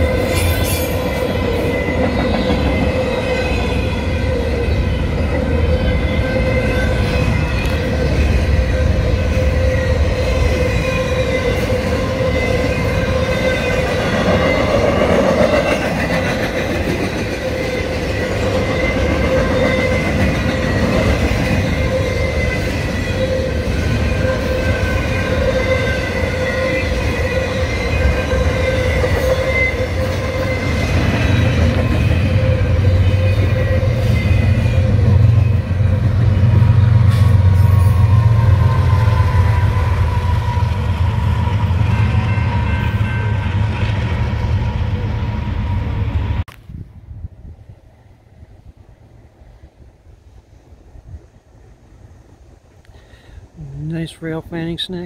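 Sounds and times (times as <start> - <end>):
high ringing wheel squeal: 0.0 - 15.8, 17.2 - 36.0, 37.1 - 46.2
freight train rumbling on rails: 0.0 - 55.0.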